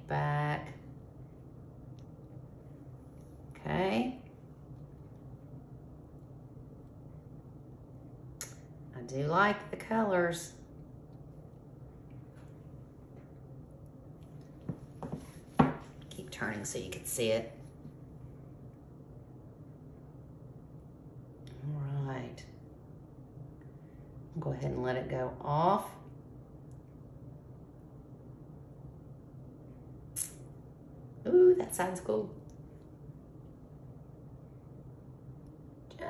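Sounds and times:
steady low hum: 0.0 - 36.0.

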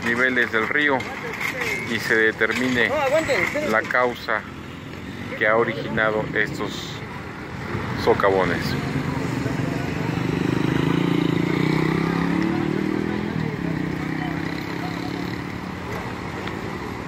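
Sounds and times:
passing vehicle engine: 4.4 - 17.0.

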